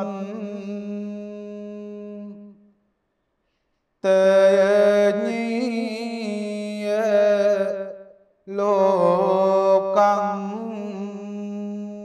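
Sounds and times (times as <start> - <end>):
monk chanting: 0.0 - 2.6, 4.0 - 12.0.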